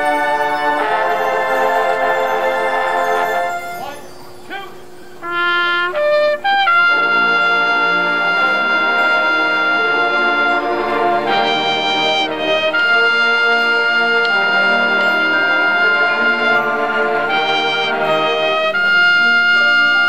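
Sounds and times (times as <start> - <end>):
marching band brass playing: 0.0 - 4.0, 5.2 - 20.0.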